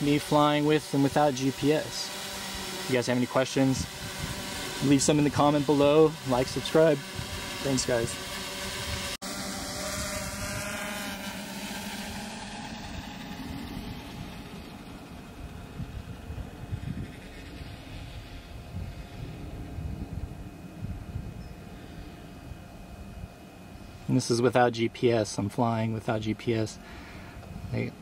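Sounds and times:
drone rotors whirring: 0.0 - 28.0
gusty wind on microphone: 3.7 - 5.4, 7.0 - 11.2, 12.0 - 23.4.

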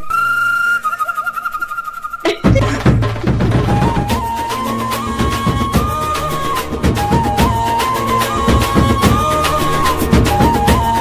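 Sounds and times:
high whistle-like note: 0.0 - 2.5.

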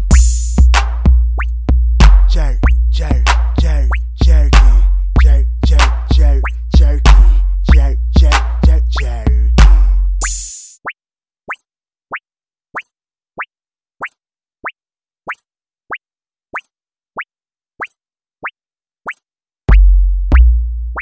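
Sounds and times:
hi-hat hiss: 0.0 - 0.7, 10.2 - 10.8
deep bass boom: 0.0 - 10.2, 19.7 - 21.0.

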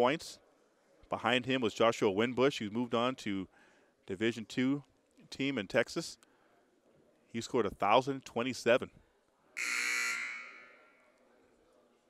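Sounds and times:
scoreboard horn buzzing: 9.6 - 10.7.

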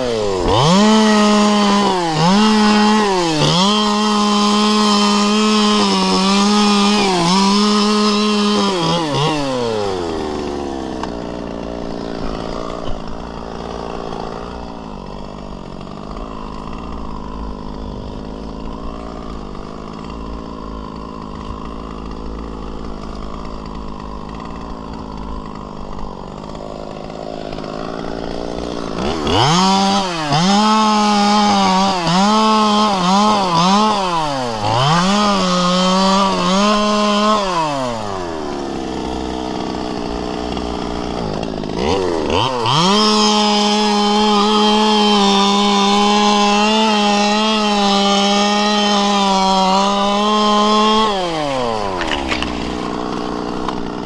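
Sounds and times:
chainsaw cutting palm fronds: 0.0 - 54.0
chainsaw idling and revving: 0.0 - 54.0.

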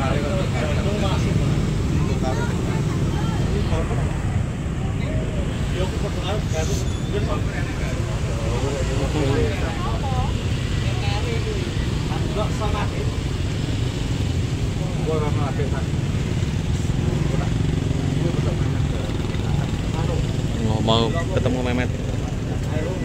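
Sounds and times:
men talking: 0.0 - 10.2, 10.8 - 23.0.

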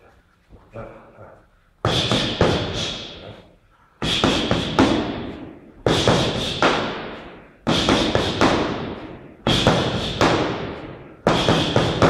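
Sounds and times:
punches and kicks on foam pads: 7.7 - 12.0.

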